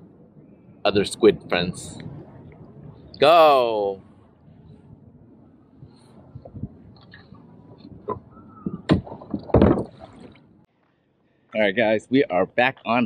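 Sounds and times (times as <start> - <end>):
water sloshing against kayak: 6.4 - 10.7
knocks on plastic hull: 8.0 - 10.2.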